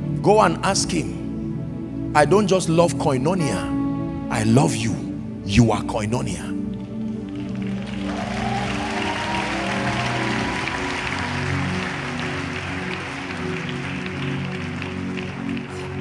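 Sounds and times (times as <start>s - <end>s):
soft keyboard chords: 0.0s - 16.0s
congregation applauding and cheering: 6.8s - 16.0s.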